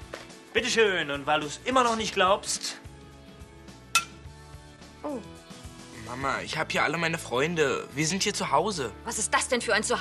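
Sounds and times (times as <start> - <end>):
faint background music: 0.0 - 10.0
glass clinking: 3.9 - 4.2.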